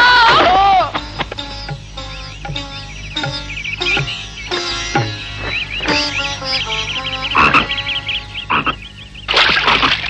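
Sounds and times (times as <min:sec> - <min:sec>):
frogs croaking: 0:00.8 - 0:10.0.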